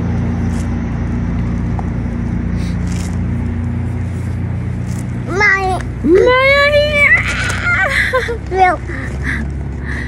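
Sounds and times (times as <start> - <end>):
road traffic engine hum: 0.0 - 10.0.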